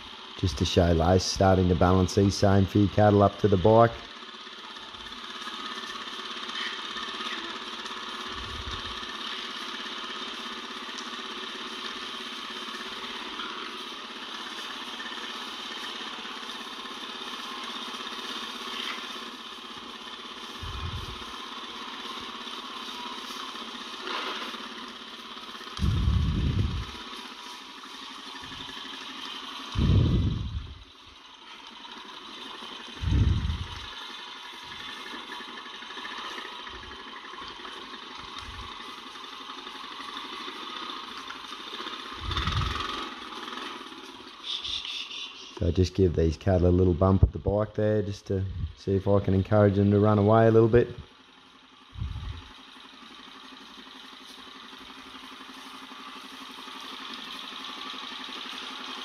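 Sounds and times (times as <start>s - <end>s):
motorbike engine idling: 0.0s - 59.0s.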